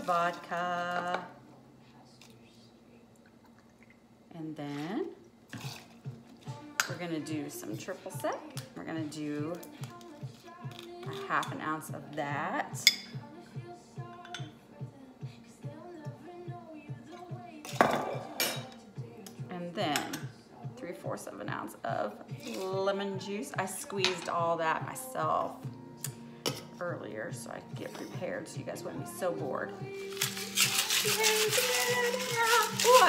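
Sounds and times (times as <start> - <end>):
background music with steady beat: 5.4 - 33.0.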